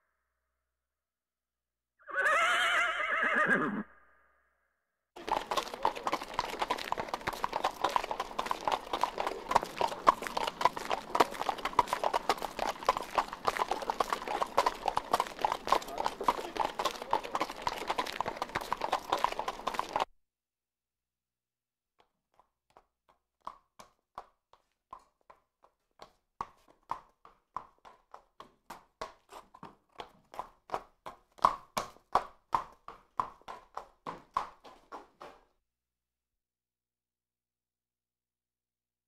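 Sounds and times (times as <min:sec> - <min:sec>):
horse whinnying: 0:02.0 - 0:04.3, 0:05.2 - 0:20.0
hooves clip-clopping at a trot: 0:05.2 - 0:20.1, 0:22.0 - 0:35.5.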